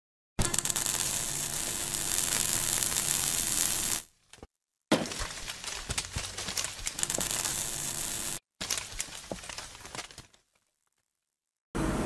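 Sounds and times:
crackling electrical static: 0.4 - 4.1, 6.6 - 9.6.

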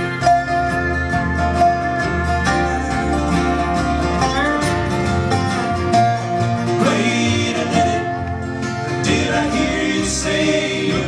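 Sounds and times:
bluegrass band playing: 0.0 - 11.0
resonator guitar sliding melody: 0.0 - 11.0.

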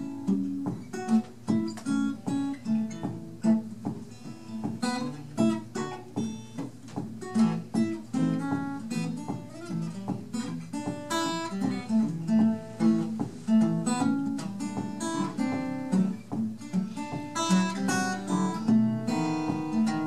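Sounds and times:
acoustic guitars fingerpicking: 0.0 - 20.0.

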